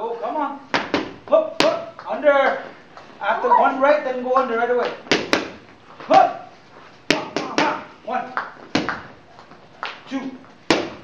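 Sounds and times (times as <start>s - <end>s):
boxing gloves smacking mitts: 0.7s - 1.8s, 5.0s - 5.6s, 7.1s - 7.8s, 8.7s - 9.1s, 10.6s - 11.0s
person shouting: 3.3s - 3.9s.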